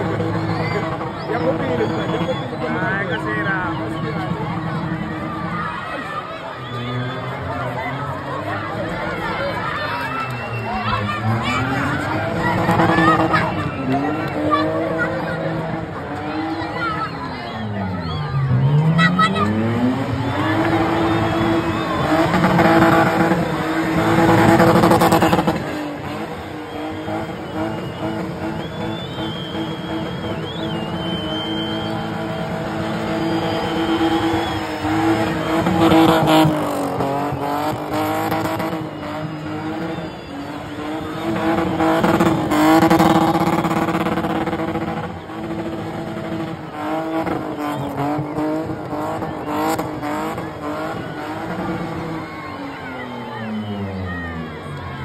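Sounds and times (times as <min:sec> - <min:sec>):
car engine at high revs: 0:00.0 - 0:05.8, 0:06.5 - 0:55.0
tyres squealing on tarmac: 0:00.0 - 0:55.0.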